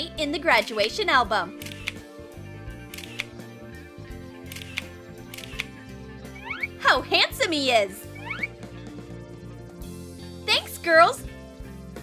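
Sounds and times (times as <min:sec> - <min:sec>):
background music: 0:00.0 - 0:12.0
camera shutter clicks: 0:01.6 - 0:02.0, 0:02.9 - 0:03.3, 0:04.5 - 0:05.7.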